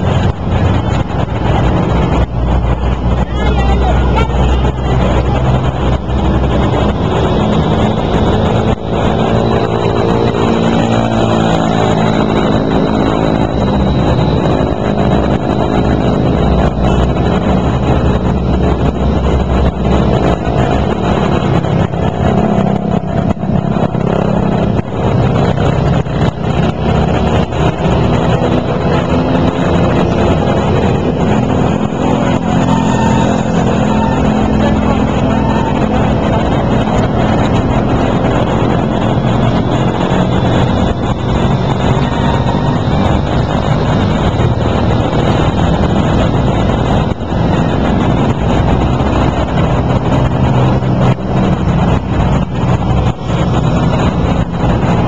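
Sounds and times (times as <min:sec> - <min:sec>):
low rumble: 0:00.0 - 0:55.0
road noise: 0:00.0 - 0:55.0
vehicle engines humming: 0:00.0 - 0:55.0.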